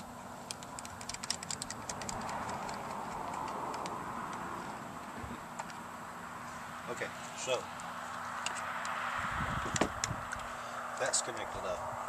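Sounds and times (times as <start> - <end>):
outdoor background hiss: 0.0 - 12.0
plastic device handled ticking: 0.5 - 4.5.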